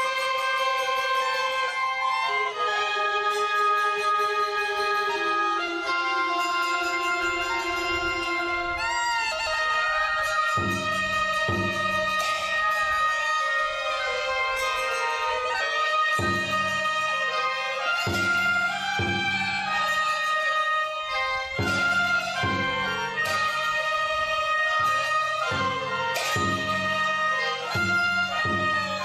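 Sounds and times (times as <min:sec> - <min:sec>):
wavering reed-pipe melody: 0:00.0 - 0:29.0
low percussion strokes: 0:01.4 - 0:29.0.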